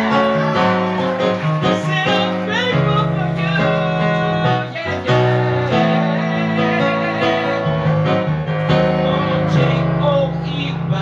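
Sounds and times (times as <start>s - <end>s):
keyboard playing held chords: 0.0s - 11.0s.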